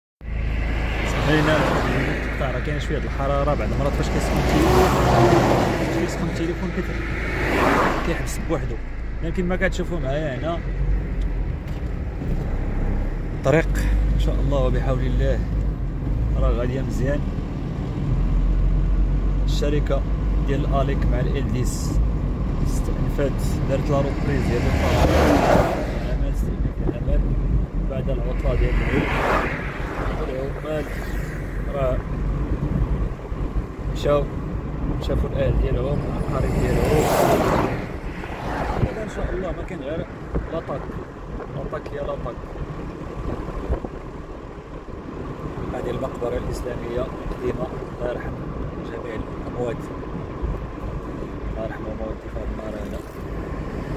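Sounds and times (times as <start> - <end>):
car passing: 0.2 - 53.9
road rumble from moving vehicle: 0.2 - 53.9
wind buffeting microphone: 24.4 - 51.6.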